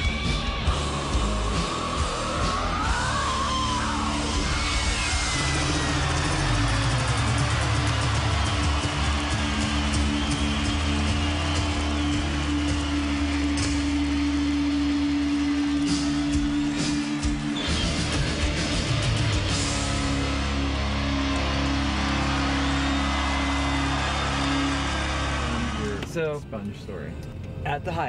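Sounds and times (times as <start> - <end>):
live heavy rock band: 0.0 - 25.3.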